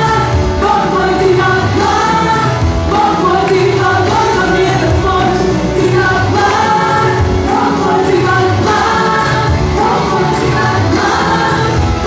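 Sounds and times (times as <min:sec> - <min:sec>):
electric guitars: 0:00.0 - 0:12.0
group singing gospel: 0:00.0 - 0:12.0
keyboard: 0:00.0 - 0:12.0.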